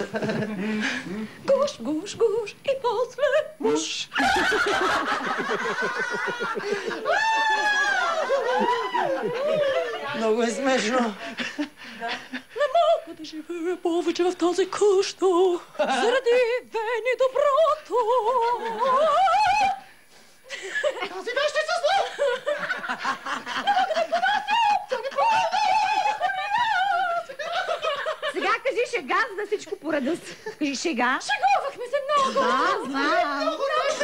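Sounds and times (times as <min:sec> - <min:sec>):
people laughing: 0:00.0 - 0:01.2, 0:04.1 - 0:13.0, 0:20.5 - 0:28.7, 0:32.0 - 0:34.0
high-pitched laughter: 0:23.2 - 0:28.4.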